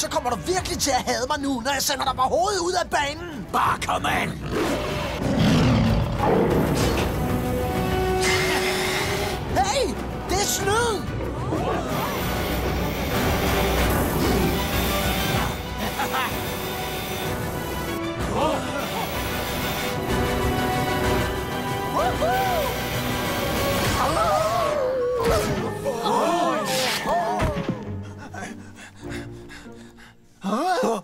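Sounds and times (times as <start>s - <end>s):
action music score: 0.0s - 31.0s.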